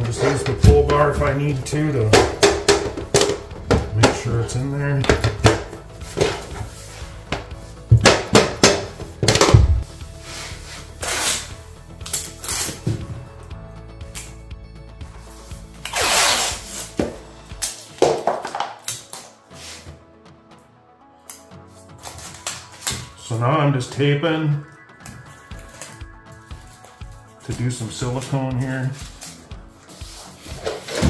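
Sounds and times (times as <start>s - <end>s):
background music: 0.0s - 31.0s.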